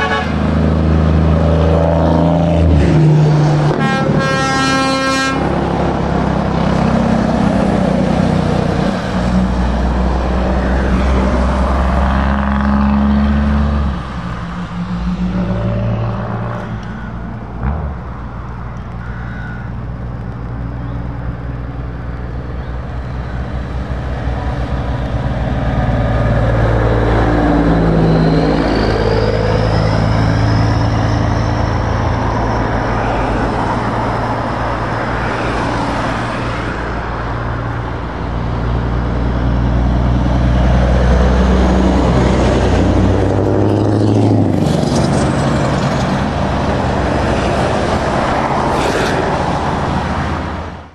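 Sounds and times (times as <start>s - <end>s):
vehicles passing on wet road: 0.0s - 50.9s.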